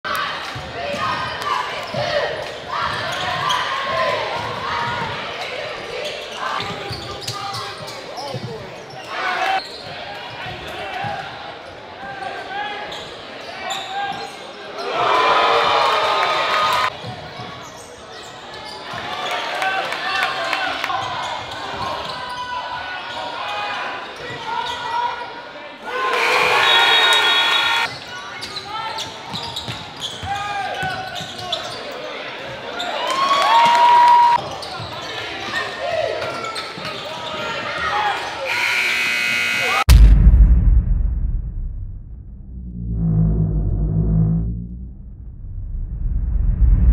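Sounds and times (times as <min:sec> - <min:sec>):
crowd cheering: 0:14.8 - 0:16.9, 0:25.8 - 0:27.9, 0:32.9 - 0:34.4
crowd voices echoing: 0:25.8 - 0:27.9.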